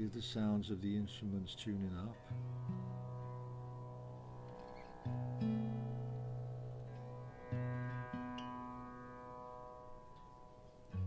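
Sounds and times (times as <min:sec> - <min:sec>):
plucked string notes ringing: 0:00.0 - 0:11.0.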